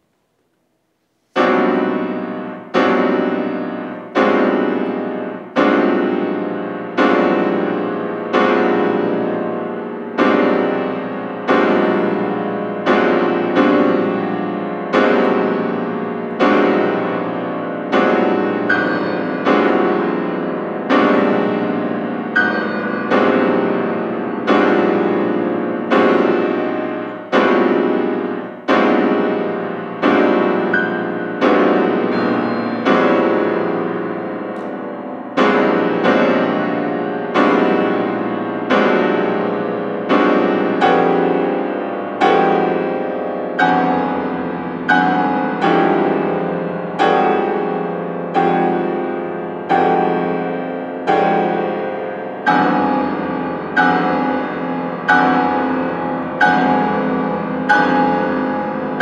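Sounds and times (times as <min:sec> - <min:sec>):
piano chords: 0:00.0 - 0:59.0.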